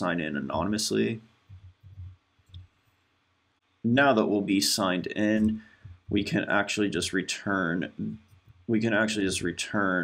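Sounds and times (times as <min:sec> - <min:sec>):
man speaking: 0:00.0 - 0:02.0, 0:03.8 - 0:10.0.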